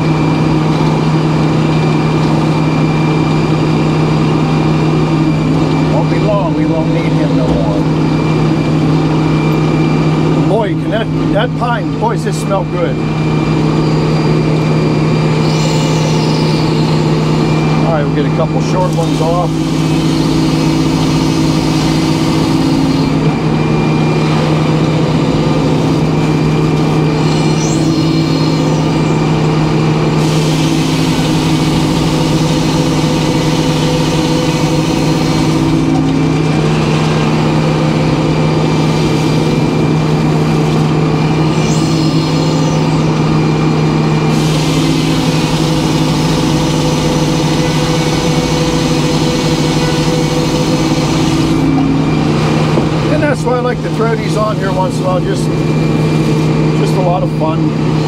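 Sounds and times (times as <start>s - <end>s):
power unit humming: 0.0s - 58.0s
circular saw blade cutting log: 15.2s - 23.3s, 25.5s - 54.8s.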